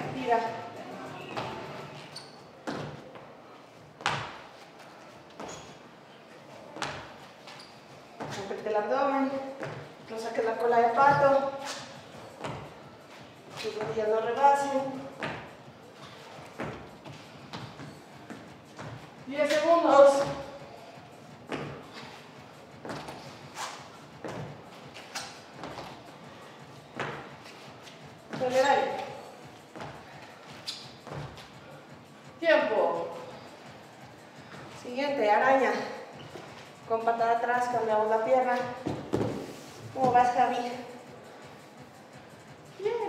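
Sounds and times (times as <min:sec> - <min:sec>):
sneakers thudding on wooden floor: 0:38.8 - 0:40.2
woman's voice: 0:40.0 - 0:40.8, 0:42.8 - 0:43.0.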